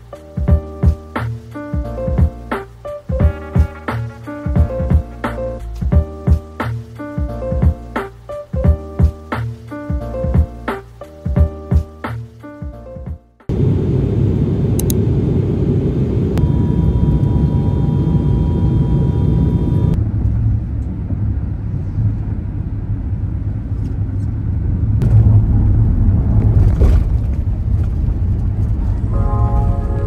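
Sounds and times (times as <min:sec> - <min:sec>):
road and engine rumble in cabin: 0:14.8 - 0:30.0.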